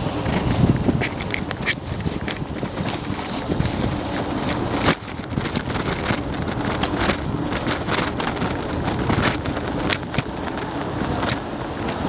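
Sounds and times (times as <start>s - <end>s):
bike rattles and clicks: 0.0s - 12.0s
rolling bicycle tyres hum: 0.0s - 12.0s
wind on microphone: 0.0s - 12.0s.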